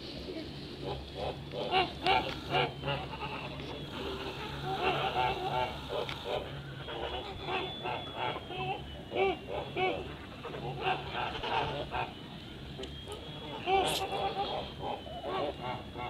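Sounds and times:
steady low hum: 0.0 - 16.0
geese honking: 0.7 - 16.0.

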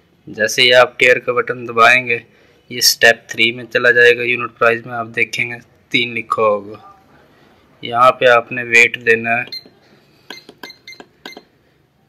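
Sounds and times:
keypad button clicks: 9.5 - 11.5.

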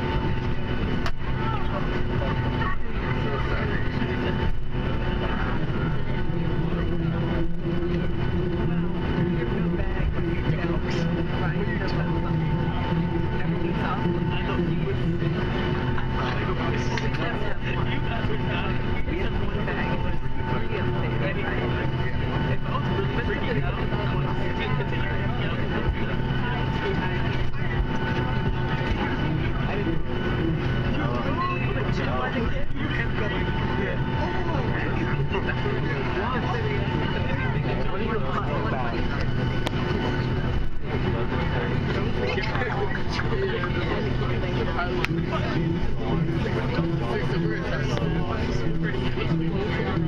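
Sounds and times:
airplane cabin engine drone: 0.0 - 50.0.

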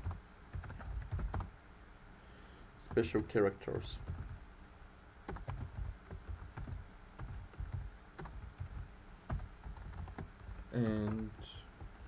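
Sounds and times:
keyboard key clicks: 5.3 - 12.0.

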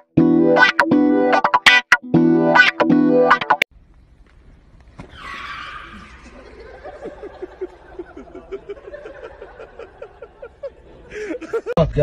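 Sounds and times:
jingle music with guitar chords: 0.0 - 3.6.

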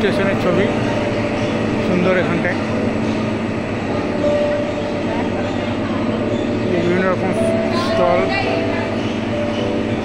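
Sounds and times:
faint voices: 0.0 - 10.0
train rumbling and humming: 0.0 - 10.0.

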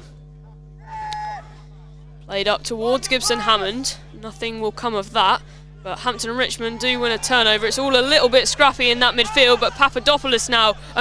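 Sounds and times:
electrical hum: 0.0 - 11.0
held vocal call: 2.9 - 5.1, 5.8 - 11.0.

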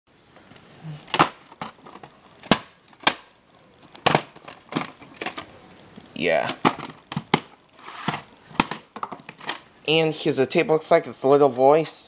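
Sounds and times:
handling clicks and knocks: 3.8 - 5.5, 6.4 - 9.7.

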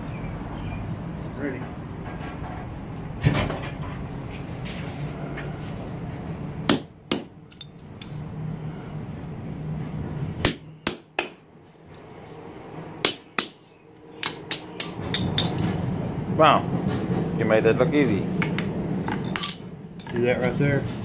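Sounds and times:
hammer striking steel punch: 6.7 - 7.7, 10.4 - 11.4, 13.0 - 13.6, 14.2 - 15.5.

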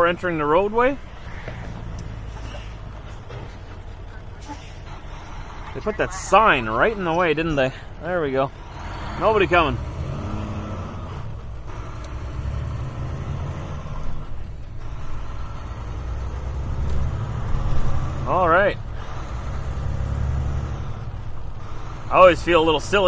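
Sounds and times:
diesel truck engine accelerating: 0.0 - 23.0.

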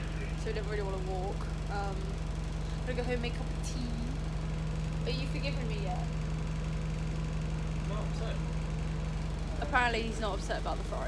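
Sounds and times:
bus engine drone inside cabin: 0.0 - 11.0.

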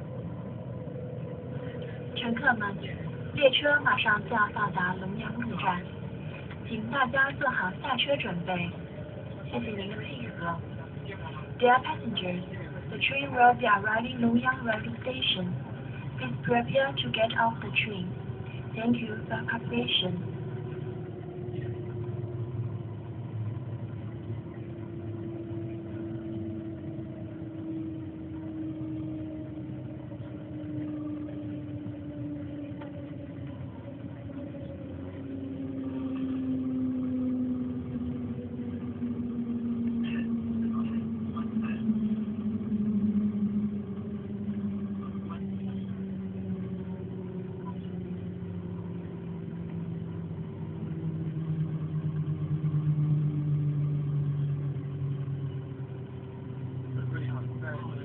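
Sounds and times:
propulsion whine falling in pitch: 0.0 - 58.0
train running rumble: 0.0 - 58.0.

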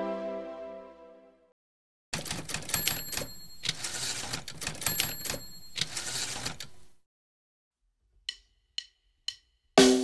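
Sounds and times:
typewriter key clacks: 2.2 - 6.8.

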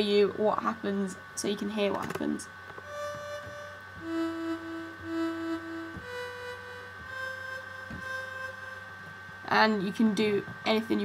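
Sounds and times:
synthesized sawtooth notes: 2.8 - 9.8
steady high tone: 2.8 - 11.0.

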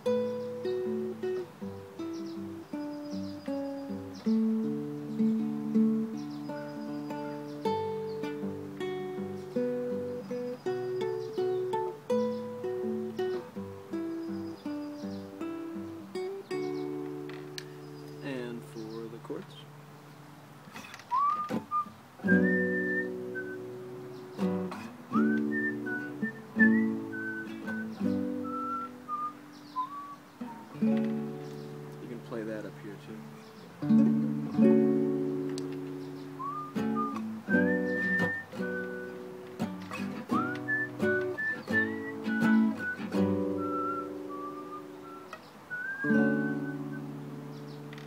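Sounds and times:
classical guitar fingerpicking: 0.0 - 48.0
whistled melody: 9.6 - 14.9, 21.1 - 30.9, 36.0 - 47.8.

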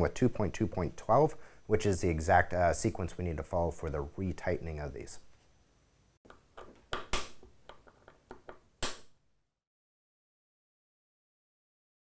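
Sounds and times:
handling clicks and knocks: 6.3 - 8.7.

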